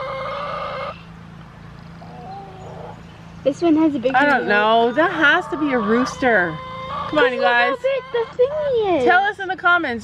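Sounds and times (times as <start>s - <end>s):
chicken calling: 0.0s - 1.1s, 2.0s - 3.1s, 4.4s - 9.0s.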